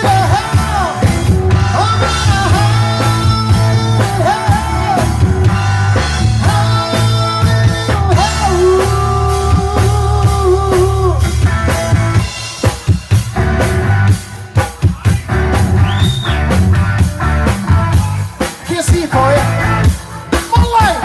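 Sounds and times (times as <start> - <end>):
drum fill: 0.0 - 21.0
live rock band playing: 0.0 - 21.0.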